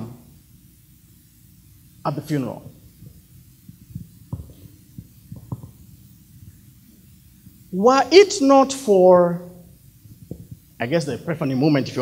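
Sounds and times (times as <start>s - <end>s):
microphone hum: 2.6s - 6.6s
soft low thumps: 2.7s - 6.6s.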